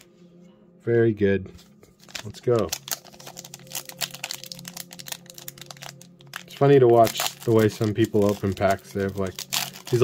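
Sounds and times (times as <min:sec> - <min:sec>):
foil wrapper crinkling: 0:02.0 - 0:10.0.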